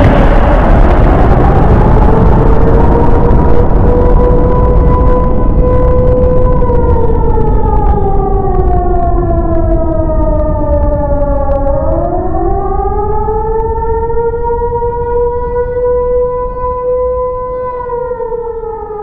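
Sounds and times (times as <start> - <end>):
heavy low rumble: 0.0 - 18.0
civil defense siren: 0.0 - 19.0.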